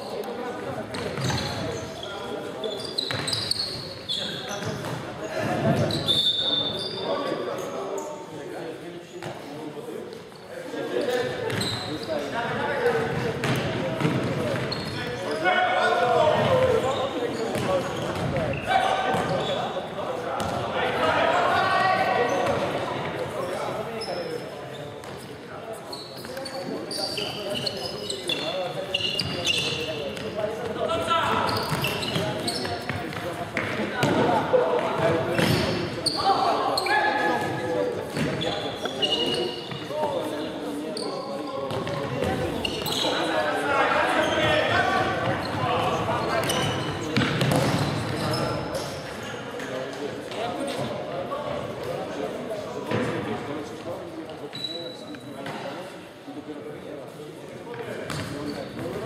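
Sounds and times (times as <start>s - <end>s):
players shouting in a hall: 18.5s - 19.6s, 20.7s - 22.6s.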